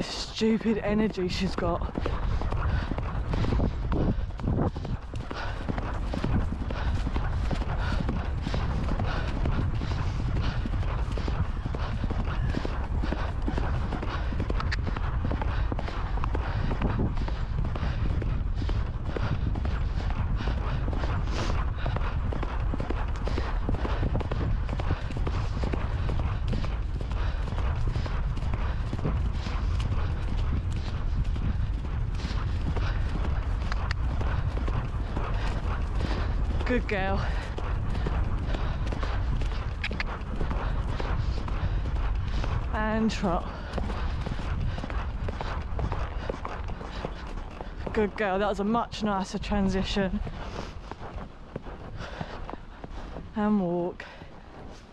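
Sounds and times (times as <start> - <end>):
horse hoofbeats on grass: 0.0 - 54.9.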